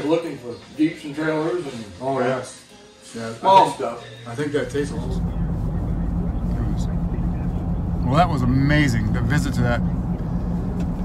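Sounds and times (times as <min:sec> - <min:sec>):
low engine hum: 0:04.6 - 0:11.0
road noise: 0:04.6 - 0:11.0.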